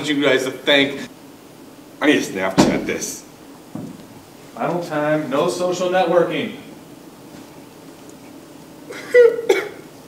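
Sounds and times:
man coughing: 0:08.9 - 0:09.9.

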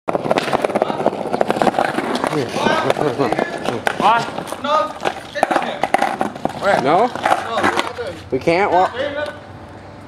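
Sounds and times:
skateboard wheels on rough pavement: 0:00.1 - 0:09.3.

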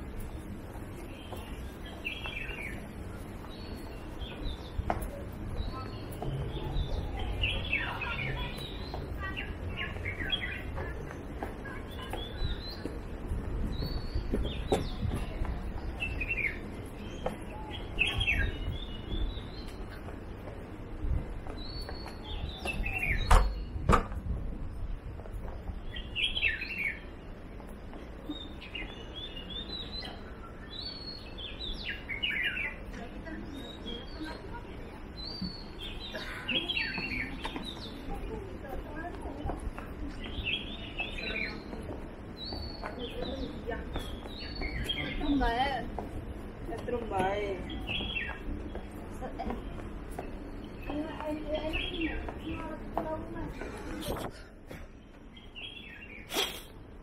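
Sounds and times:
small birds chirping: 0:00.0 - 0:23.9, 0:25.2 - 0:57.0
outdoor background noise: 0:00.0 - 0:57.0.

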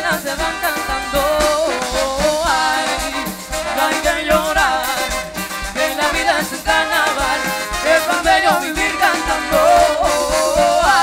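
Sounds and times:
congas and drum kit rhythm: 0:00.0 - 0:11.0
live salsa band playing: 0:00.0 - 0:11.0.

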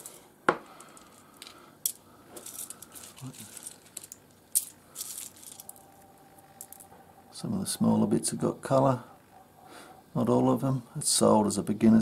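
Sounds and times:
stones clicking and rattling: 0:00.0 - 0:06.9.

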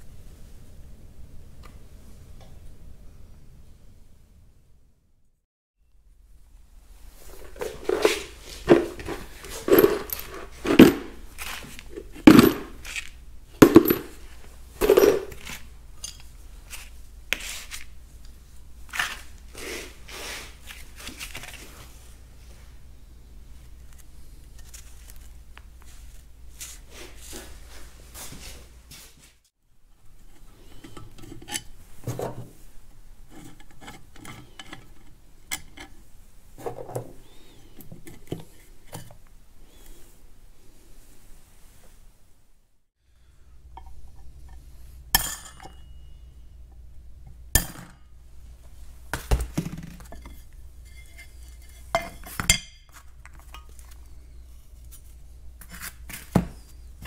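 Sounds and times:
metal parts clanking on workbench: 0:07.4 - 0:16.3.

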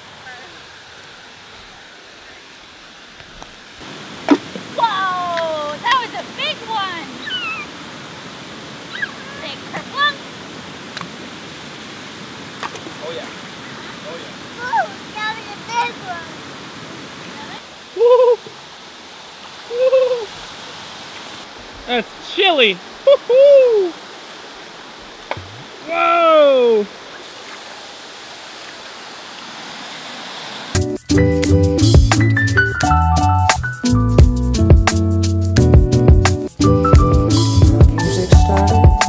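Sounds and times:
river and small waterfall rushing: 0:00.0 - 0:31.2, 0:36.3 - 0:39.0
voices: 0:04.7 - 0:07.7, 0:08.8 - 0:10.3, 0:13.0 - 0:16.4, 0:21.8 - 0:24.0, 0:25.4 - 0:27.0
child's voice: 0:04.8 - 0:07.6, 0:08.9 - 0:10.2, 0:14.6 - 0:16.4, 0:17.3 - 0:17.6
short hooting calls: 0:07.2 - 0:07.8.

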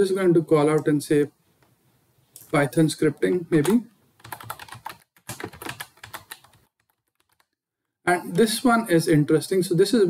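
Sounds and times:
keyboard typing: 0:03.2 - 0:07.6.

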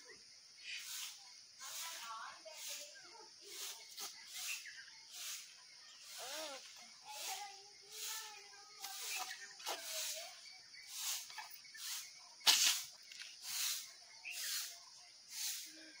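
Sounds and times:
small child's faint voice: 0:00.0 - 0:11.2, 0:13.4 - 0:16.0
person breathy hissing: 0:13.4 - 0:14.7, 0:15.3 - 0:15.9.

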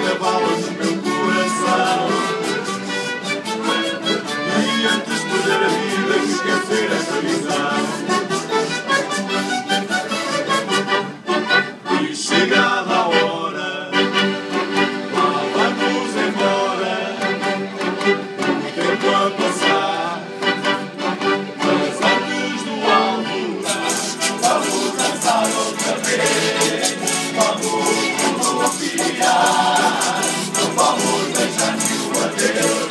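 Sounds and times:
strummed acoustic guitars: 0:00.0 - 0:13.0, 0:14.1 - 0:32.9
accordion melody: 0:00.0 - 0:32.9.

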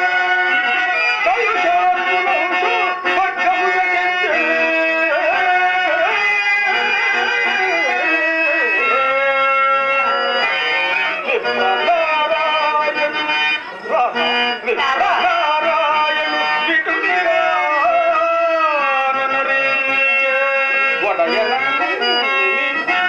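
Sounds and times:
harmonium holding notes: 0:00.0 - 0:23.0
man singing ornamented verse: 0:00.0 - 0:23.0.

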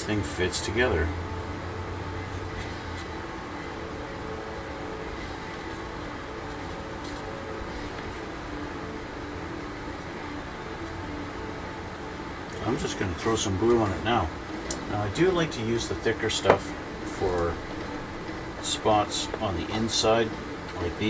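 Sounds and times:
mechanical room hum: 0:00.0 - 0:21.0.

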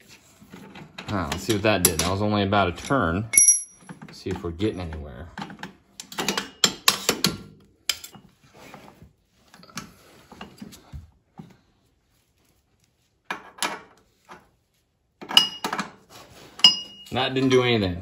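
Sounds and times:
metal parts clicking and clinking: 0:02.8 - 0:04.4
ringing metal clinks: 0:03.3 - 0:03.9.

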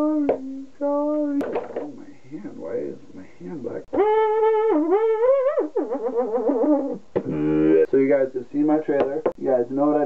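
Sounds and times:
man singing falsetto: 0:00.0 - 0:01.1, 0:03.9 - 0:07.9.

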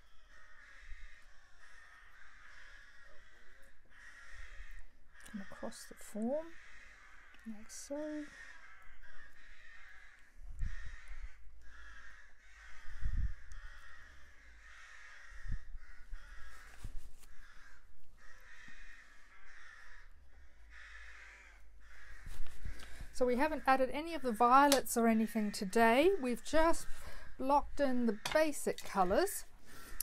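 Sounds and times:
birds calling: 0:00.0 - 0:16.7, 0:17.3 - 0:30.0.

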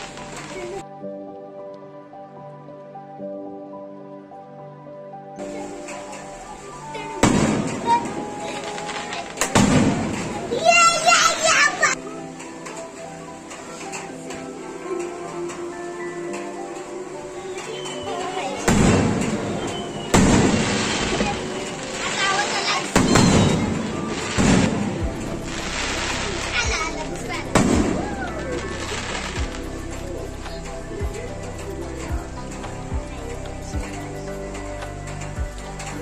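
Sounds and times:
fireworks bursting: 0:00.0 - 0:00.8, 0:05.4 - 0:34.1
people's voices: 0:00.0 - 0:00.9, 0:05.4 - 0:36.0
children shouting excitedly: 0:05.5 - 0:12.0, 0:20.7 - 0:24.4, 0:26.4 - 0:29.4
dull firework thump: 0:07.2 - 0:10.4
firework bang echo: 0:07.2 - 0:10.7, 0:18.6 - 0:26.5, 0:27.4 - 0:29.7.

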